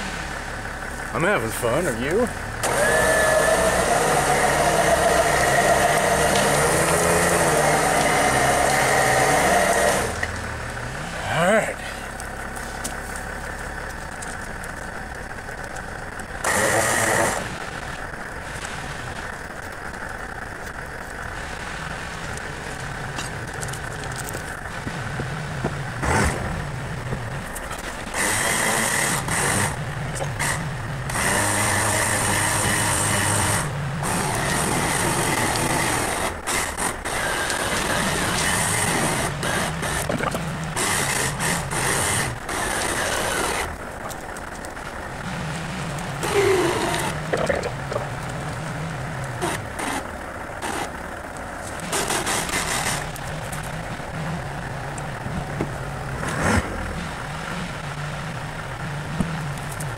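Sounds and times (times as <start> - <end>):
electric winch motor: 0.0 - 11.2, 12.2 - 59.9
truck engine running: 0.0 - 59.9.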